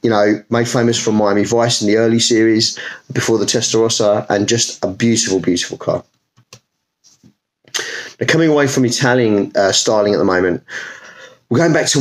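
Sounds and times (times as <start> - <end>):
man talking: 0.0 - 6.1, 7.8 - 12.0.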